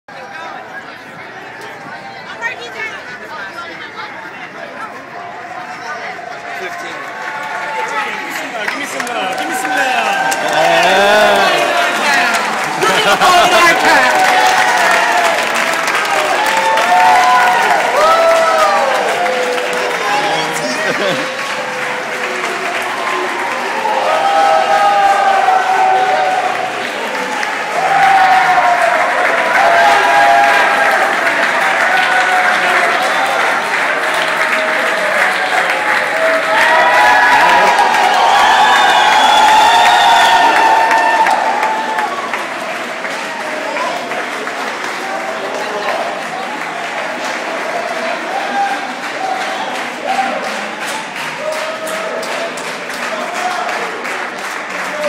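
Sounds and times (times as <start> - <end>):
crowd applause: 0.1 - 55.0
crowd whooping and shouting: 7.2 - 44.1, 44.9 - 54.0, 54.8 - 55.0.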